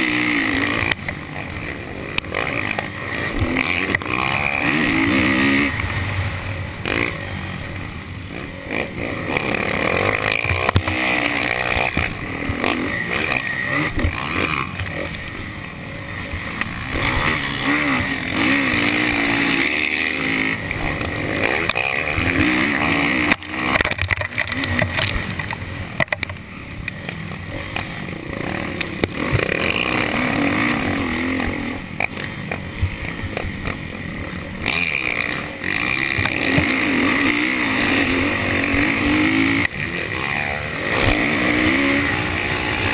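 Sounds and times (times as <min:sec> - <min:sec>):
dirt bike engine revving: 0:00.0 - 0:42.9.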